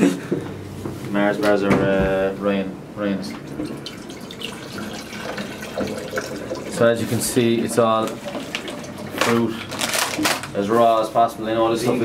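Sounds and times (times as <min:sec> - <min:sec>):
water pouring into plastic cup: 0:03.3 - 0:10.2.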